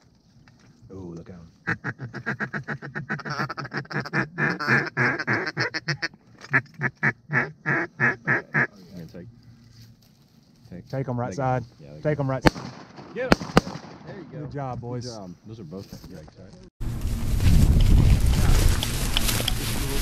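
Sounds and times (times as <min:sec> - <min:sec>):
duck call quacks: 0:01.6 - 0:08.7.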